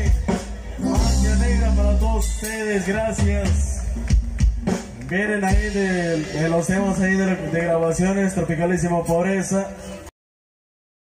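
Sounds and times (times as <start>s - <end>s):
live band holding low note: 0.0s - 10.1s.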